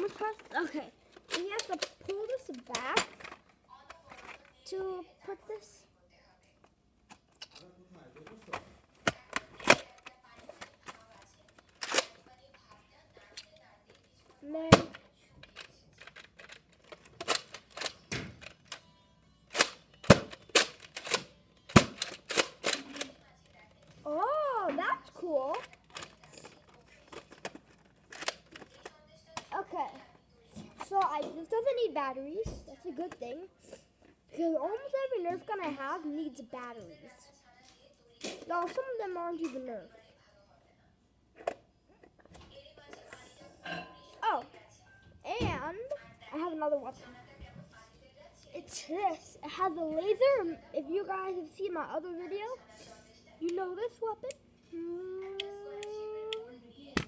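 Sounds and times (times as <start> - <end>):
toy blaster plastic clicks: 19.5 - 23.1.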